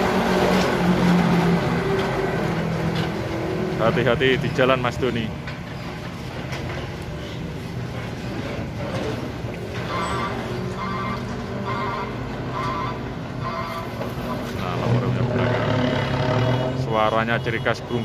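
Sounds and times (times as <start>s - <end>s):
diesel truck engine driving off: 12.3s - 17.0s.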